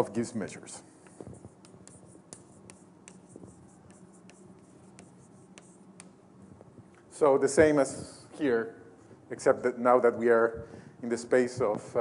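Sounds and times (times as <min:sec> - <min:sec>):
low room hum: 0:00.0 - 0:12.0
writing on a board: 0:01.0 - 0:06.2.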